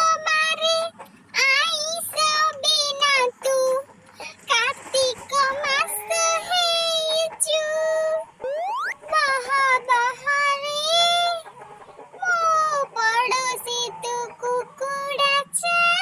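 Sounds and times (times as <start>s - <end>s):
high-pitched voice singing: 0.0s - 11.4s, 12.2s - 16.0s.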